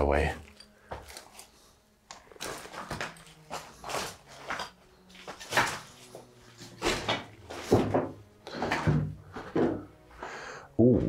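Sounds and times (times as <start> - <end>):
footsteps crunching on rubble: 2.3 - 10.0.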